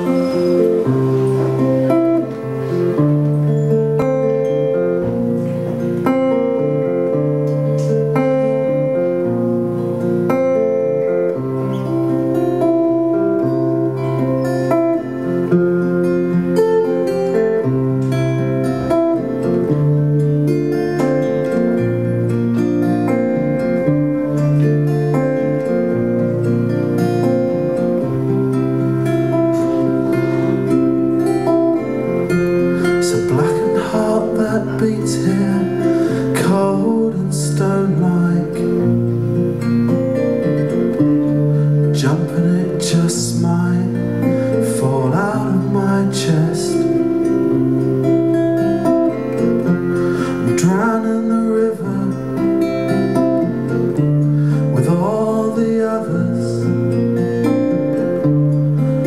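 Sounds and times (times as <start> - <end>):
acoustic guitars playing: 0.0 - 59.0.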